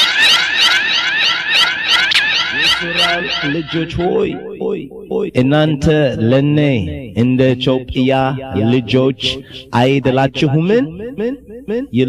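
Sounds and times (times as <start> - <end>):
electronic warbling tone: 0.0 - 5.4.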